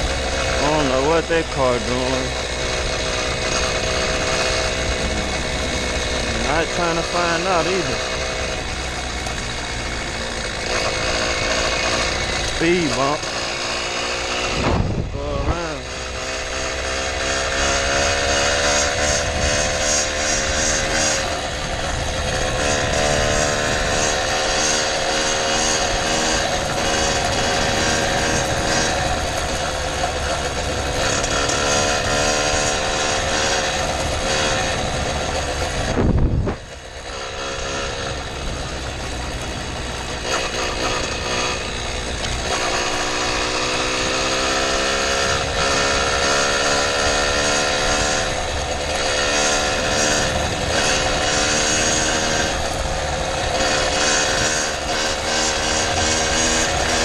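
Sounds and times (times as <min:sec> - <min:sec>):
small two-stroke engine running: 0:00.0 - 0:57.0.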